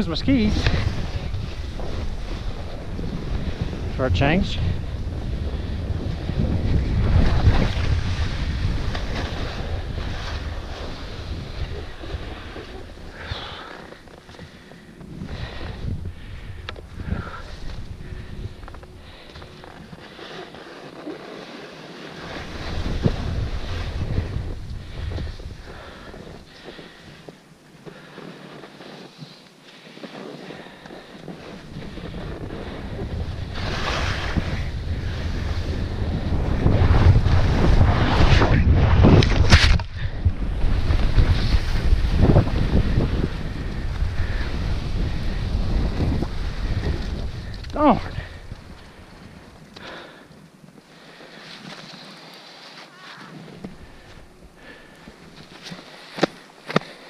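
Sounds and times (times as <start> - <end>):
wind buffeting microphone: 0.0 - 20.1, 22.2 - 27.3, 30.6 - 50.1
skis scraping on snow: 0.0 - 57.0.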